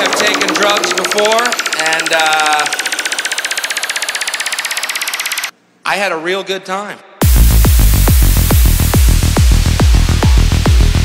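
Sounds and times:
pulsing synth riser: 0.0 - 5.5
processed spoken vocal sample: 5.8 - 7.2.

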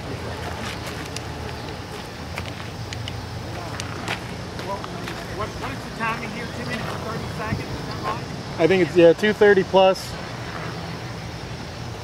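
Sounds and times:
background voices talking: 0.0 - 10.2.

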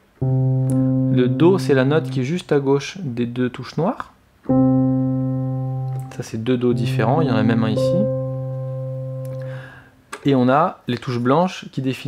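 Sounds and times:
piano note: 0.0 - 2.5, 4.5 - 10.0.

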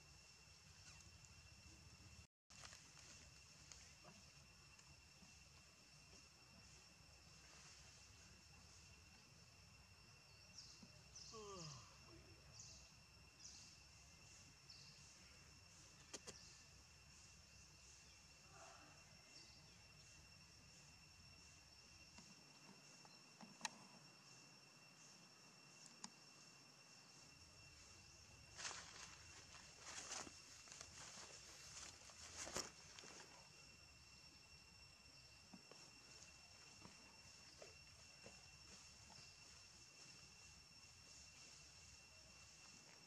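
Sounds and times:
high-pitched insect drone: 0.0 - 43.0.

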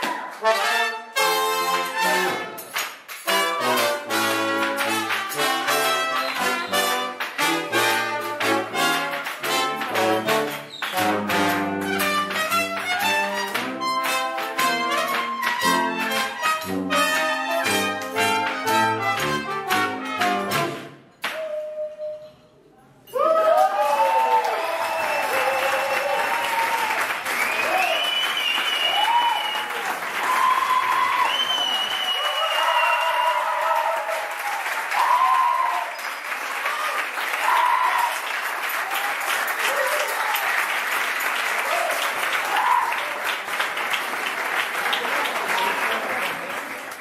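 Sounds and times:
audience applause: 0.0 - 0.7, 1.8 - 20.4, 23.3 - 47.0
cheering and whooping voices: 23.1 - 40.6, 41.5 - 43.3.

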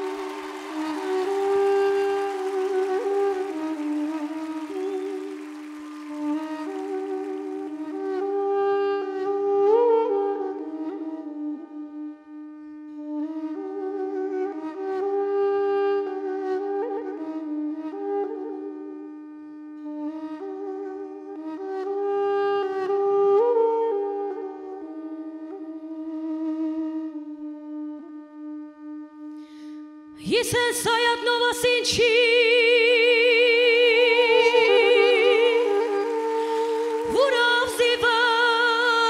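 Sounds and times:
duduk playing slow melody: 0.0 - 39.0.

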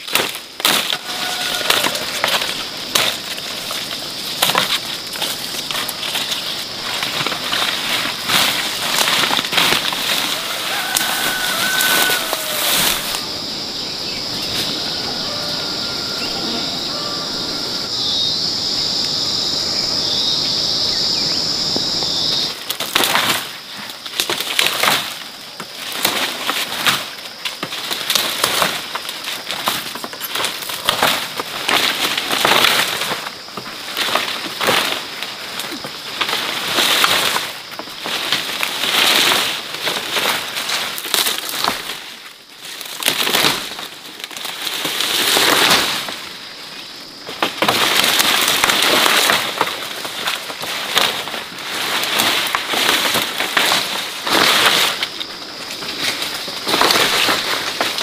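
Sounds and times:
dry grass rustling and crackling: 0.0 - 17.9, 22.5 - 58.0
high insect buzz: 0.6 - 22.6.

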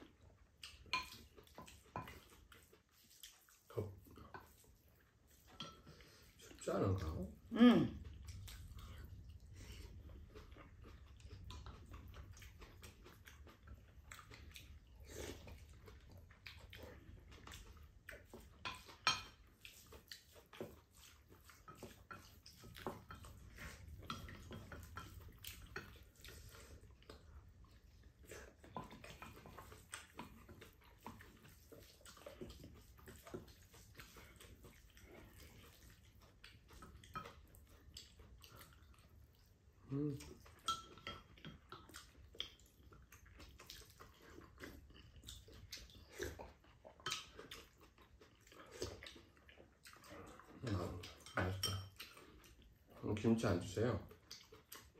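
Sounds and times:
chewing and mouth sounds: 0.0 - 54.9.

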